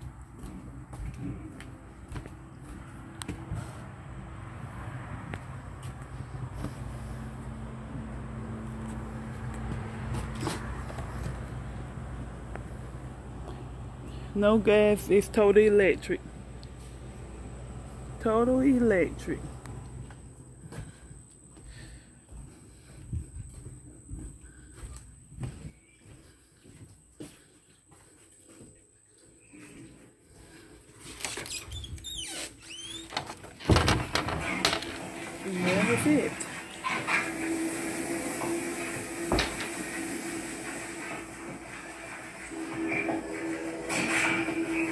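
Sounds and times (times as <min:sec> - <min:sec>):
footsteps on wooden porch: 0:00.0 - 0:13.7, 0:16.2 - 0:36.6
steady hum: 0:00.0 - 0:24.4
door squeaking: 0:31.2 - 0:36.0
door banging: 0:33.0 - 0:36.0.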